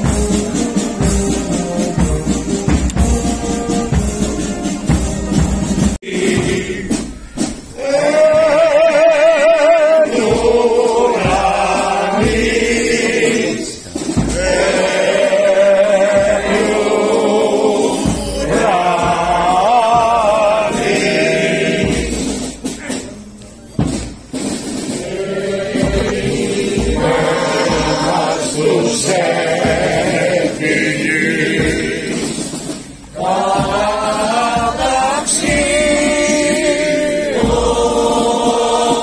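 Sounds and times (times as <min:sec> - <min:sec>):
male voices chanting: 0:07.8 - 0:23.2, 0:25.0 - 0:32.5.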